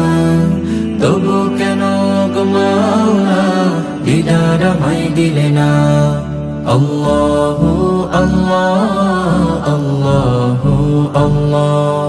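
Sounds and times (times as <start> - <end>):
male group singing in harmony: 0.0 - 12.0.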